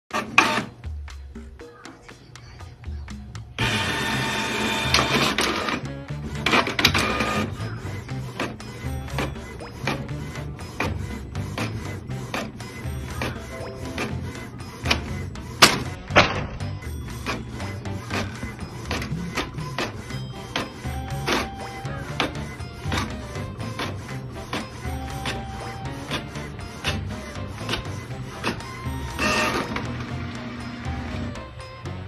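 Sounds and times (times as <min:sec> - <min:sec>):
printer whirring and clattering: 0:00.1 - 0:00.8, 0:03.6 - 0:31.6
background music: 0:00.1 - 0:32.0.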